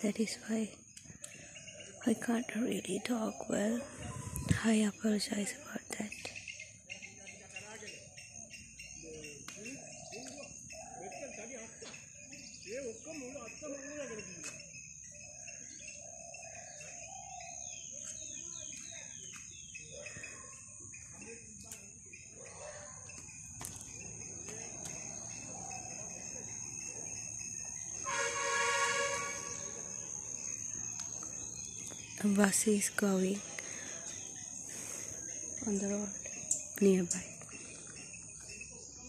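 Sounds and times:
birds calling: 0:00.0 - 0:39.0
high insect buzz: 0:26.4 - 0:38.7
bus horn steady note: 0:28.0 - 0:29.9.

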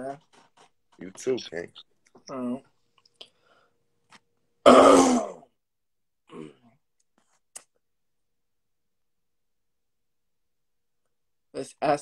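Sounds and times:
man clearing his throat: 0:04.6 - 0:05.5.

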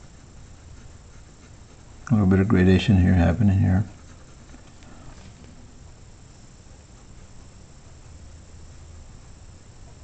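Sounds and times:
pencil scratching on paper: 0:00.0 - 0:05.4.

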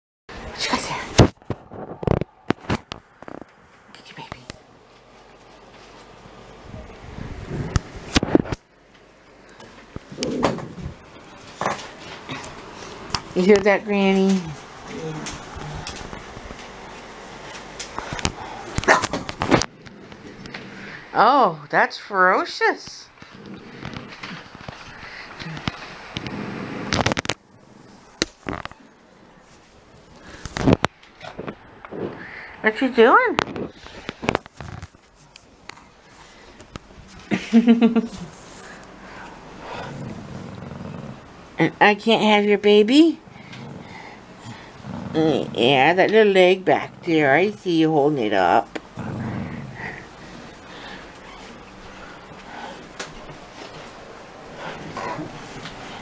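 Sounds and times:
small dog growling: 0:10.1 - 0:10.9, 0:23.2 - 0:28.9, 0:39.6 - 0:41.3, 0:43.2 - 0:45.6, 0:48.9 - 0:52.9, 0:54.5 - 0:56.0.

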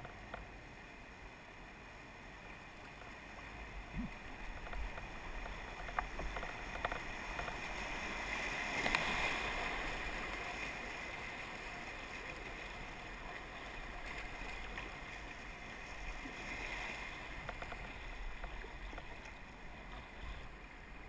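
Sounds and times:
whitewater splashing over kayak: 0:03.5 - 0:21.0
river rapid rushing: 0:03.8 - 0:20.0.

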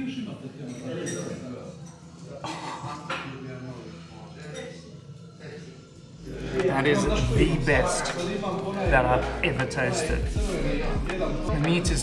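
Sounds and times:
murmur of voices: 0:00.0 - 0:12.0
cutlery and dishes clinking: 0:00.7 - 0:02.3.

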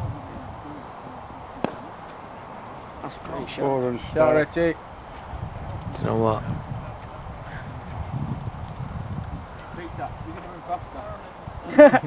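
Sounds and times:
cricket bat striking ball: 0:01.6 - 0:01.9.

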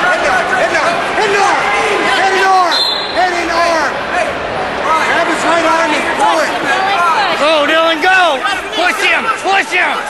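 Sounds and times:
spectators and coaches yelling: 0:00.0 - 0:10.0.

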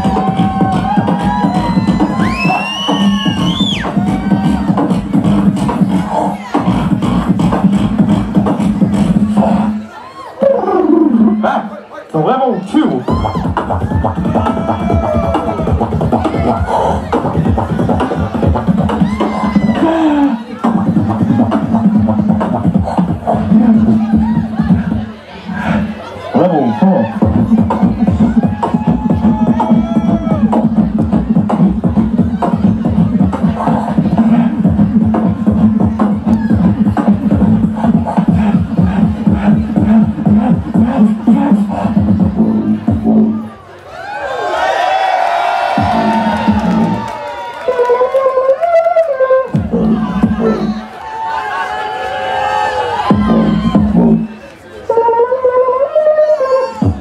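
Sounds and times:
beatboxing through microphone: 0:00.0 - 0:43.6, 0:45.7 - 0:47.1, 0:47.7 - 0:50.9, 0:53.0 - 0:57.0
gliding vocal tones: 0:19.7 - 0:28.4, 0:30.6 - 0:43.6.

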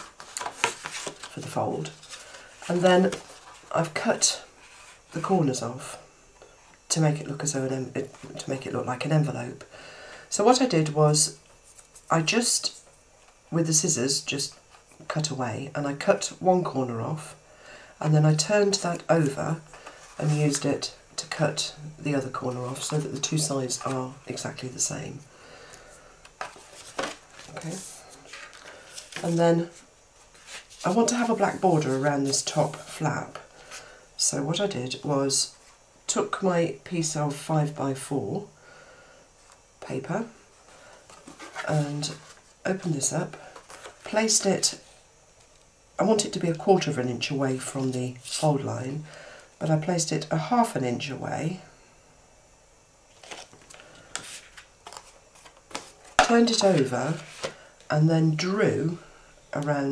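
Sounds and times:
paper and card rustling: 0:00.0 - 0:05.3, 0:18.7 - 0:21.4, 0:22.2 - 0:24.9, 0:26.3 - 0:33.8, 0:40.7 - 0:44.6, 0:53.1 - 0:57.6.

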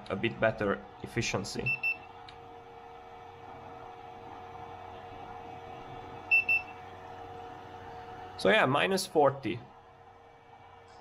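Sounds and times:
steady hum of cooling setup: 0:00.0 - 0:11.0
thermometer high beeps: 0:01.6 - 0:02.1, 0:06.3 - 0:06.8.

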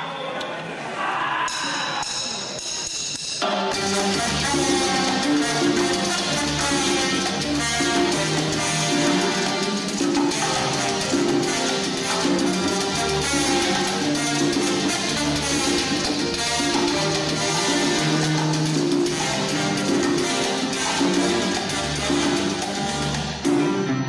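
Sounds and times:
salsa band playing: 0:03.4 - 0:24.0.

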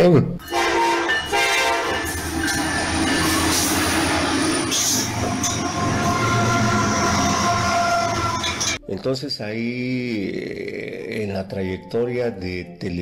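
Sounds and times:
high squealing tones: 0:00.4 - 0:08.8
train horn: 0:00.4 - 0:08.8
train running on rails: 0:00.4 - 0:08.8.

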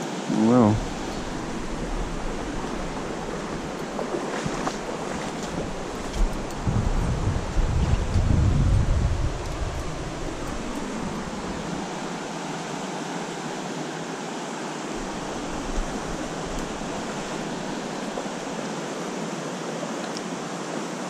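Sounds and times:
stream rushing over riffles: 0:00.0 - 0:21.0
wind rumble on microphone: 0:00.7 - 0:12.3, 0:15.0 - 0:18.5.

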